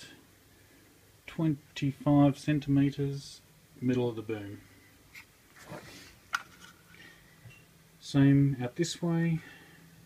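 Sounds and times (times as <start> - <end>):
faint handling rustle: 5.1 - 7.2.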